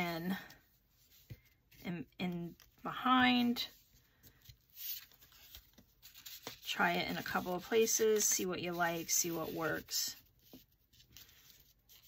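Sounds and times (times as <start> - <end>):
paper rustling: 2.5 - 12.0.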